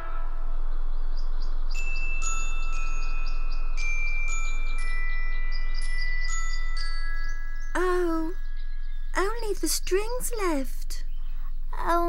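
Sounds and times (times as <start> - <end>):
steady low hum: 0.0 - 12.0
bell-like chime notes: 1.7 - 9.1.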